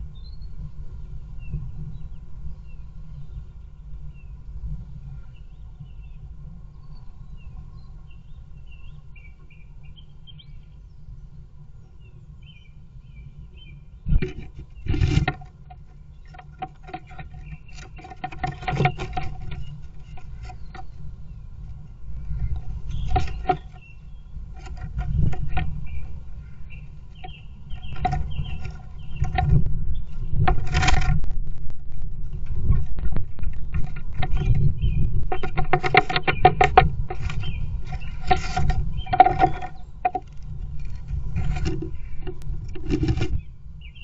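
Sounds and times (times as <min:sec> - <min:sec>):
songbirds chirping: 0:00.0 - 0:44.0
bird scratching in nest box: 0:14.1 - 0:44.0
sharp scratchy clicks: 0:14.2 - 0:21.0, 0:30.5 - 0:43.4
steady low rumble: 0:19.3 - 0:44.0.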